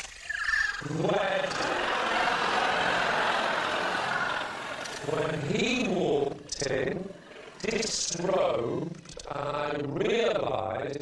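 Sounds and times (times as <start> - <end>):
person speaking: 0.8 - 2.0, 4.9 - 10.6
studio audience laughing: 1.0 - 7.9.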